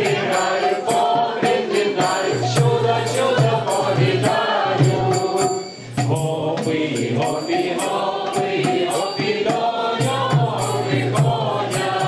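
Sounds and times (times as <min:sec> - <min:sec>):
tambourine jingles: 0:00.0 - 0:12.0
women singing together: 0:00.0 - 0:12.0.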